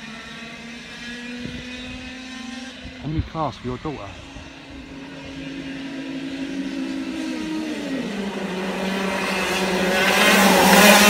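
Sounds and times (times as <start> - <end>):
distant kart engines droning: 0.0 - 11.0
higher engine note: 2.7 - 11.0.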